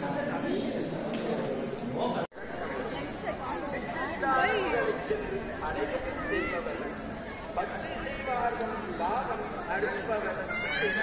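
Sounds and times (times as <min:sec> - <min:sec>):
people talking in background: 0:00.0 - 0:11.0.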